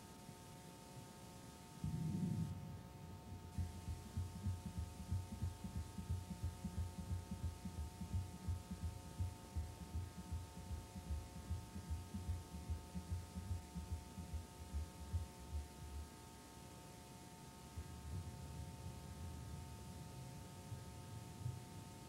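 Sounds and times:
steady electrical hum: 0.0 - 22.0
thin steady tones: 0.0 - 22.0
low uneven throbbing thumps: 1.8 - 16.2, 17.3 - 22.0.

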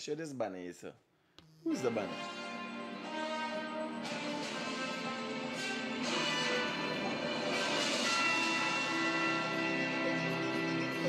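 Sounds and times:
ringing bell-like tones: 6.8 - 11.0.

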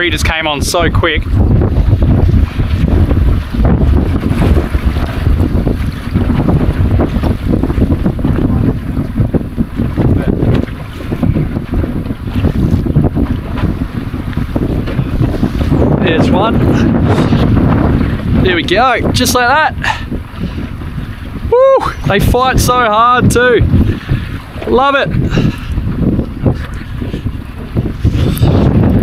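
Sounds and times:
water slapping boat hull: 0.0 - 29.0
wind buffeting microphone: 0.0 - 29.0.

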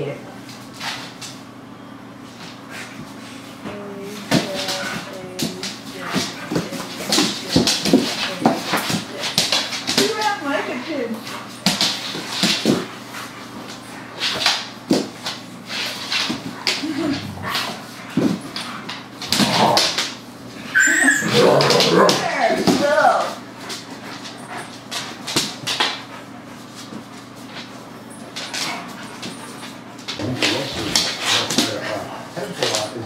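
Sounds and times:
dogs scuffling: 2.2 - 33.0
dogs growling and snarling: 16.7 - 18.0, 19.2 - 22.6
dog whining: 20.6 - 22.5.

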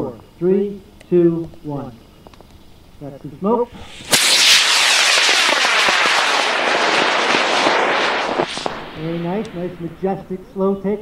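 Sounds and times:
rocket motor rushing hiss: 3.7 - 10.5.

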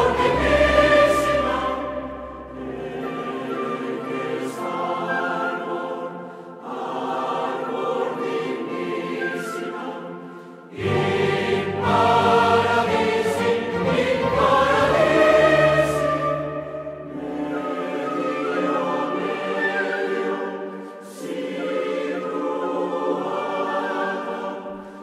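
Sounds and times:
choir singing: 0.0 - 25.0.

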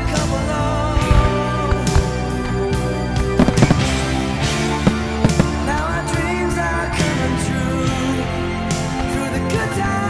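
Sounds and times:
music: 0.0 - 10.0
fireworks bangs and cracks: 1.0 - 2.6, 3.4 - 6.0.

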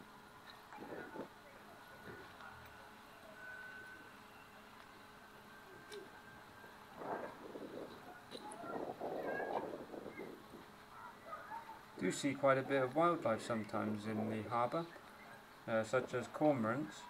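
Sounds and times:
quiet harbourside background: 0.0 - 17.0
seagulls calling: 7.0 - 11.8.

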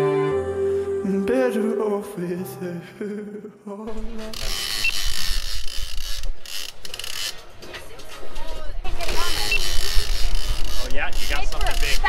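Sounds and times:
song playing: 0.0 - 4.4.

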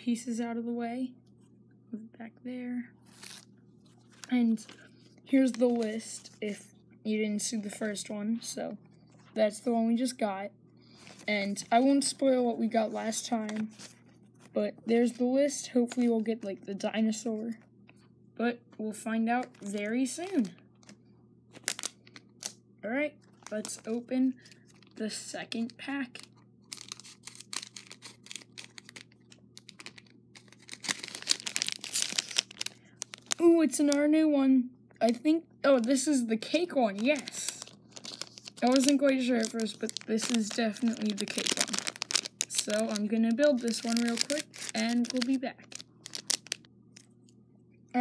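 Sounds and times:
faint low hum: 0.0 - 48.0
plastic bag crinkling: 3.0 - 6.4, 10.9 - 12.2, 19.4 - 22.6, 23.2 - 34.0, 35.7 - 47.2
person speaking: 4.2 - 17.6, 18.4 - 20.6, 22.8 - 26.3, 33.0 - 46.4.

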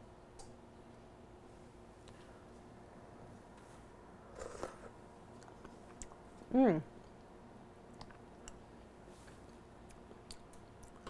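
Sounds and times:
slurping soup from a spoon: 4.3 - 5.0.

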